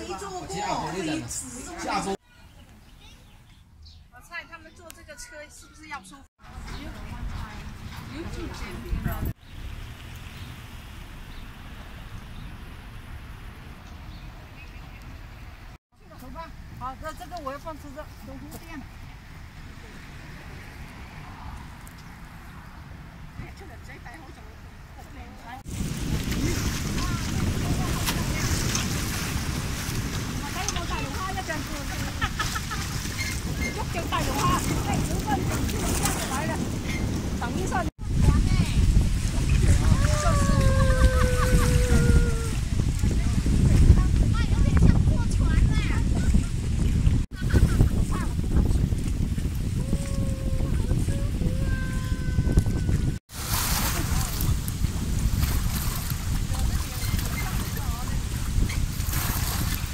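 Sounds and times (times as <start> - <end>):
wind buffeting microphone: 6.4 - 14.3, 25.4 - 59.9
waves washing against rocks: 25.7 - 44.2, 53.3 - 59.9.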